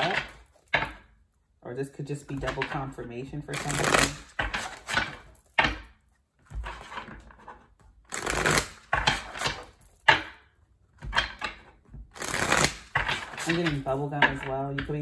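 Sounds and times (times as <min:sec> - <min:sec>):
cards being shuffled: 0:02.3 - 0:05.7, 0:06.4 - 0:10.2, 0:11.1 - 0:14.9.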